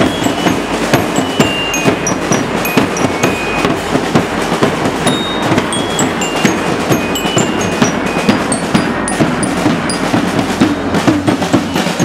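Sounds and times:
bell lyre notes: 0.0s - 4.3s, 4.9s - 12.0s
marching drums and cymbals: 0.0s - 12.0s.

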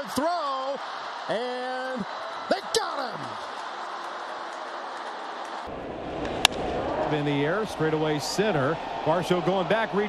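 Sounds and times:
ballpark crowd hum: 0.0s - 10.0s.

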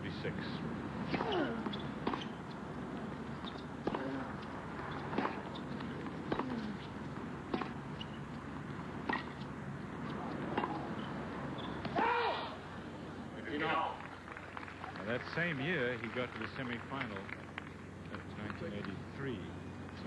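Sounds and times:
steady background hiss: 0.0s - 20.0s
tennis ball hits: 1.0s - 2.6s, 3.2s - 12.5s.

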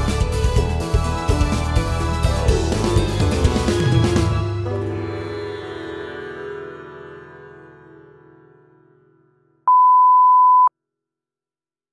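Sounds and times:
music: 0.0s - 9.6s
loud electronic beep: 9.7s - 10.7s.

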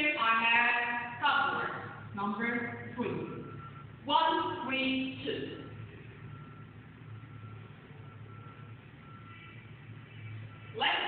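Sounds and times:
low steady hum: 0.0s - 11.0s
faint high beeps: 3.2s - 4.5s, 5.4s - 11.0s.

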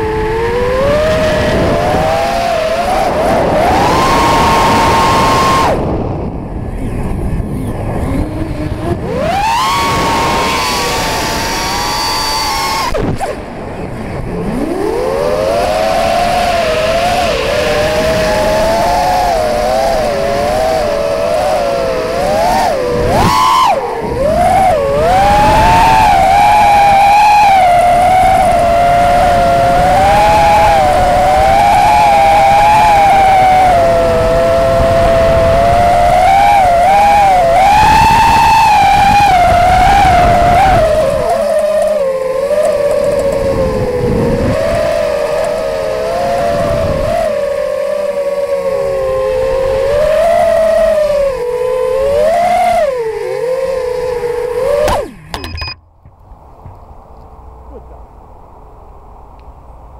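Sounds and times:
drone motors whining: 0.0s - 58.1s.

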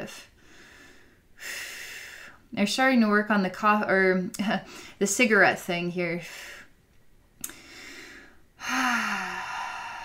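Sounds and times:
woman sighing: 8.6s - 10.0s.

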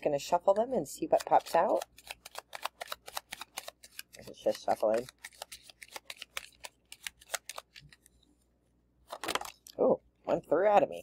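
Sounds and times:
playing cards being shuffled: 1.0s - 8.1s.

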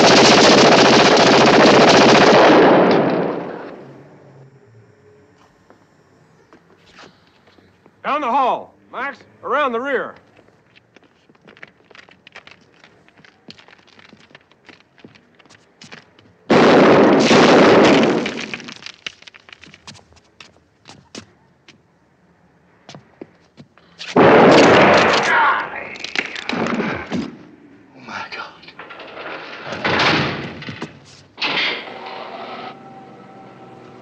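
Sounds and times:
shotgun blasts: 0.0s - 3.8s, 16.5s - 18.6s, 24.1s - 25.5s
footfalls: 10.3s - 21.8s, 22.8s - 27.6s, 28.7s - 31.9s.

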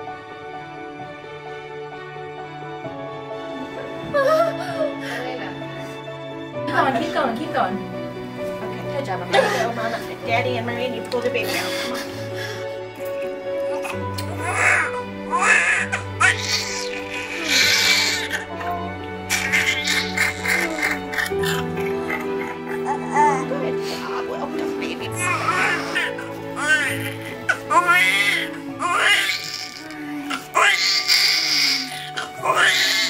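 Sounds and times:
background music with low notes: 0.0s - 33.0s
newborn crying: 11.3s - 12.6s, 13.7s - 33.0s.

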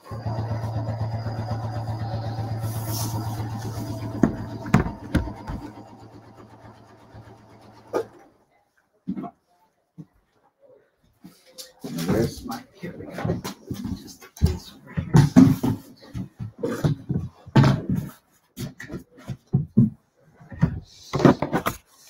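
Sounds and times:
sewing machine stitching: 0.0s - 8.4s.

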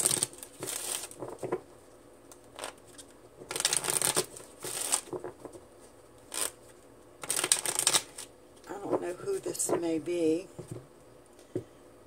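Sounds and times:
cards being shuffled by hand: 0.0s - 1.7s, 2.4s - 9.0s.

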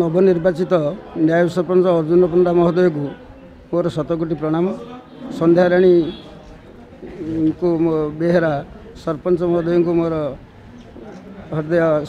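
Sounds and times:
man speaking: 0.0s - 6.3s.

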